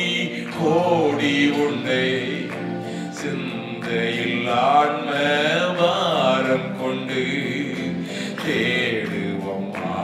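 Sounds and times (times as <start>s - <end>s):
man singing a hymn into microphone: 0.0s - 10.0s.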